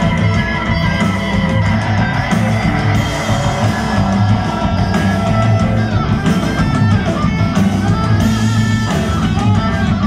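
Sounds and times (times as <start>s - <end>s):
electric guitars: 0.0s - 10.0s
rock band playing live: 0.0s - 10.0s.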